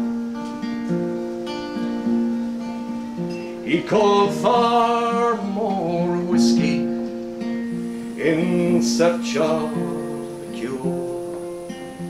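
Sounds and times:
acoustic guitar strumming chords: 0.0 - 12.0
person singing folk ballad: 2.0 - 12.0.

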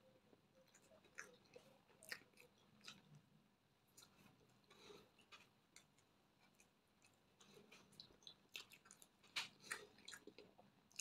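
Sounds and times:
chewing food: 0.3 - 11.0.

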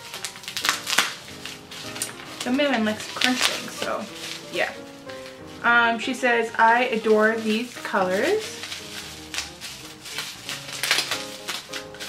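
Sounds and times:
plastic and bubble wrap crinkling: 0.0 - 12.0
soft background music: 0.0 - 12.0.

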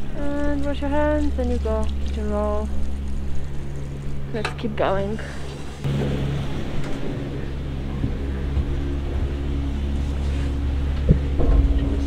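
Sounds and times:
station machinery low hum: 0.0 - 12.0.

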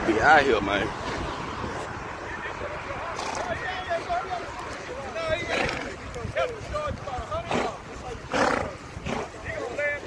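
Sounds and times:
people calling: 1.6 - 10.0
horse snorting: 3.2 - 3.5, 5.4 - 6.0, 7.4 - 9.6.

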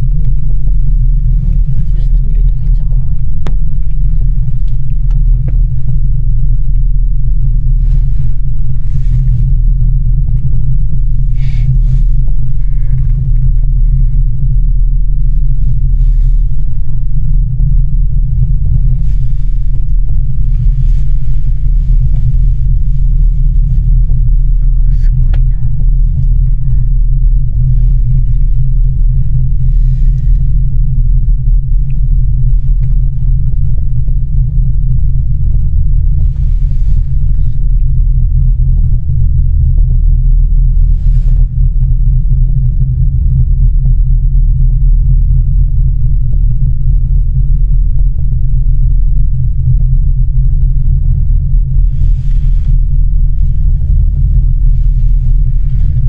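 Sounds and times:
gondola cabin low rumble: 0.0 - 56.0.

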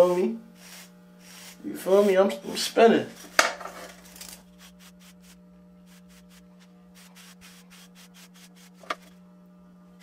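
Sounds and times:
steady low hum: 0.0 - 10.0
brush bristles rasping over hair: 0.6 - 2.4, 3.9 - 9.1.

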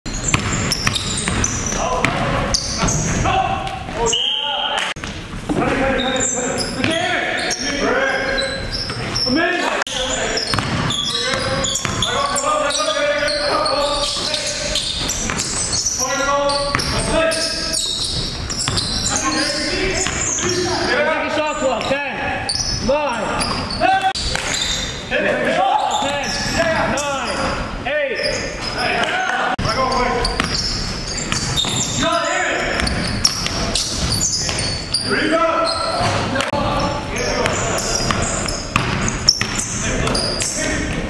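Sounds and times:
basketball bouncing on hardwood floor: 0.2 - 3.1, 10.5 - 10.9, 37.4 - 39.6
players calling out: 0.2 - 41.0.

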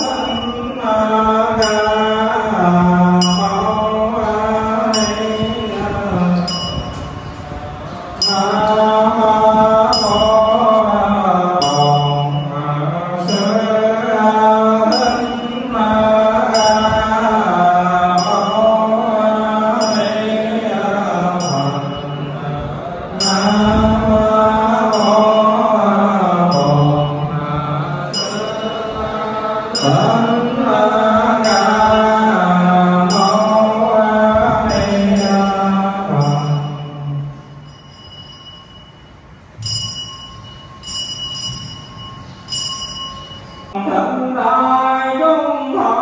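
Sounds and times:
monks chanting: 0.0 - 37.4
high ringing strike: 0.0 - 43.8.

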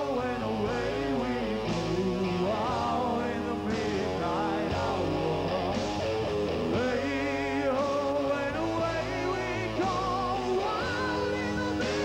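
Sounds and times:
person singing: 0.0 - 5.8, 6.6 - 12.0
electric guitar: 0.0 - 12.0
rock band playing live: 0.0 - 12.0.

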